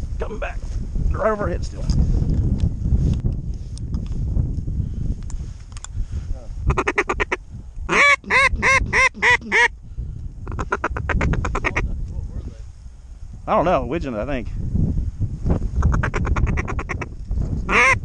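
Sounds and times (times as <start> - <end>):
duck quacking: 6.7 - 9.7, 17.7 - 18.0.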